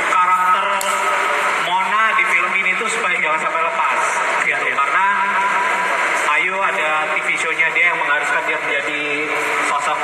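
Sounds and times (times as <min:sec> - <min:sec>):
man talking into microphone: 0:00.0 - 0:05.6, 0:06.2 - 0:10.0.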